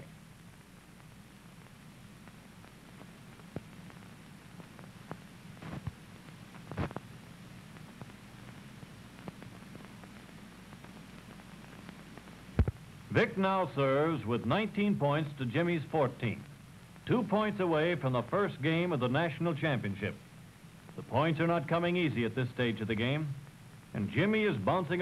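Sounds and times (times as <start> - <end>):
film soundtrack hum and hiss: 0.0 - 25.0.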